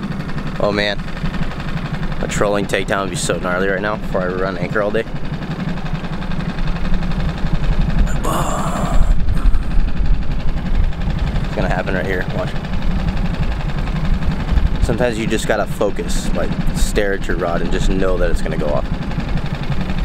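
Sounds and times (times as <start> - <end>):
outboard motor running: 0.0 - 20.0.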